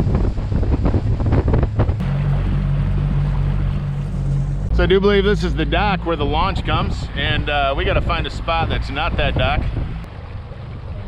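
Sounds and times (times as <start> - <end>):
wind gusting on microphone: 0.0 - 10.1
outboard motor hum: 0.0 - 11.0
water rushing and splashing: 0.0 - 11.0.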